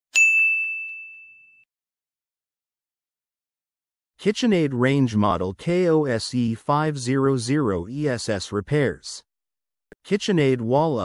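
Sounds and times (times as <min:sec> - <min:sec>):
bright bell ding: 0:00.1 - 0:01.7.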